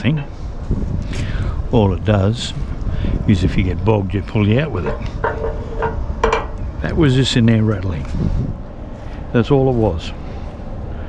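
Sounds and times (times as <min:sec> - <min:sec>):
metal pin rattling: 0:04.8 - 0:06.6.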